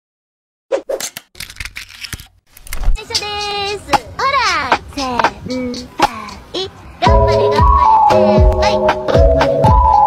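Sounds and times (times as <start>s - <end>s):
glitchy clicks and crackles: 1.4s - 3.0s.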